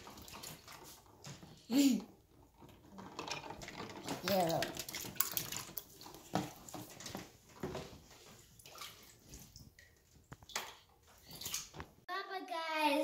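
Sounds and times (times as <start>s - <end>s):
water sloshing in plastic tub: 0.0s - 12.0s.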